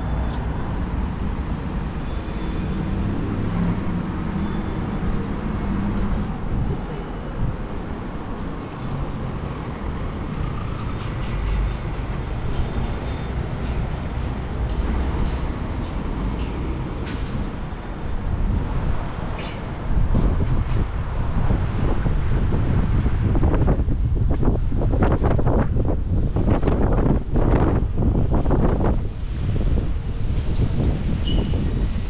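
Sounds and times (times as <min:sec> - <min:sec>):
cars passing: 0:00.0 - 0:32.0.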